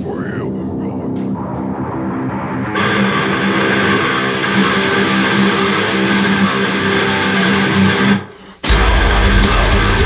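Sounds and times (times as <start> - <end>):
distorted electric guitar: 0.0 - 10.0.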